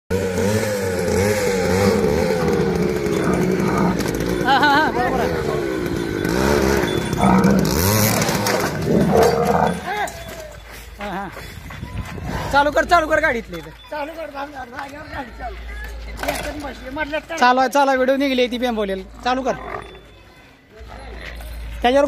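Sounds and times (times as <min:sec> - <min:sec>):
motorcycle engine revving: 0:00.1 - 0:10.0.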